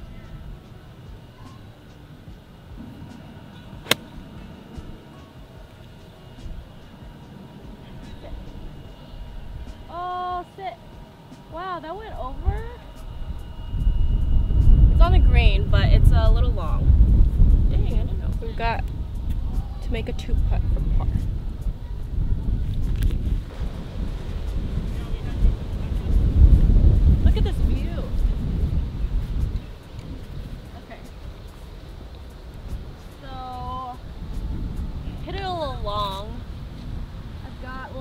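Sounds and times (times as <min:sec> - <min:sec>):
wind buffeting microphone: 0:06.4 - 0:38.0.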